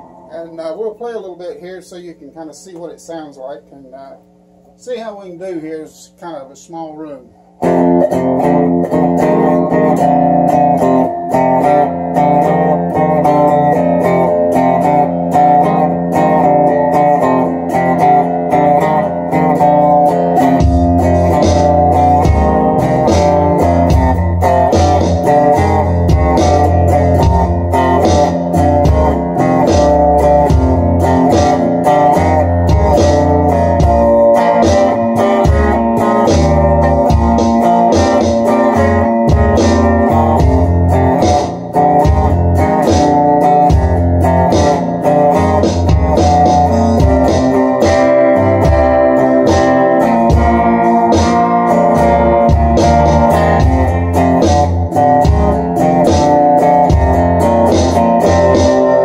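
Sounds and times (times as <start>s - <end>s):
electric cigar box guitar: 0.0s - 59.0s
drum accompaniment: 1.8s - 59.0s
bass line: 7.3s - 59.0s.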